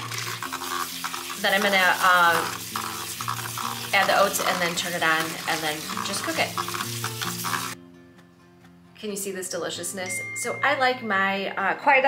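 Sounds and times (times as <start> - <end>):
pot scraping and bubbling: 0.0 - 7.8
soft background music: 0.0 - 12.0.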